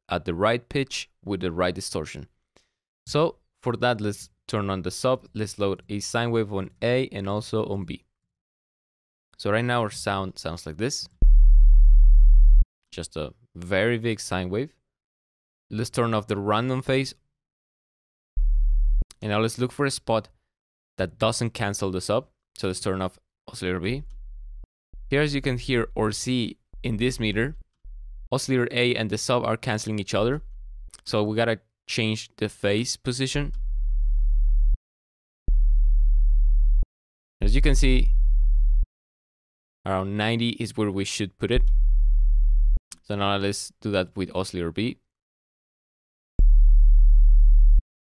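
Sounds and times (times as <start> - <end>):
low synth bass note: 11.2 - 12.6, 18.4 - 19.0, 24.0 - 26.2, 26.8 - 28.3, 30.3 - 30.9, 33.5 - 34.8, 35.5 - 36.8, 37.4 - 38.8, 41.6 - 42.8, 46.4 - 47.8.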